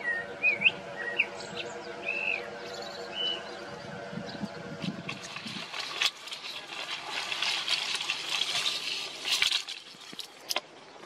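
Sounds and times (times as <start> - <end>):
birds chirping: 0.0 - 7.5
paramotor engine drone: 0.0 - 9.6.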